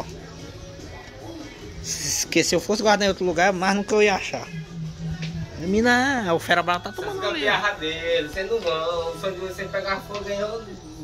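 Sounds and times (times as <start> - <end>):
music: 0.0 - 11.0
steady low hum: 4.4 - 6.2.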